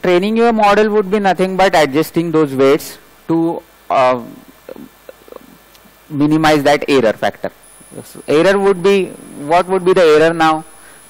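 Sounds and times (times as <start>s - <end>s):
man speaking: 0.0s - 10.8s.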